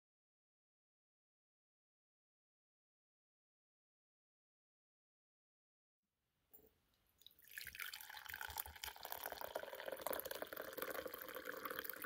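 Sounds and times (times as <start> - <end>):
drink pouring into ceramic mug: 7.2 - 12.0.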